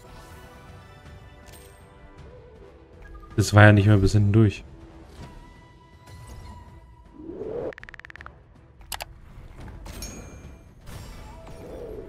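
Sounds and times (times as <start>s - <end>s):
rising swoosh: 7.1s - 8.3s.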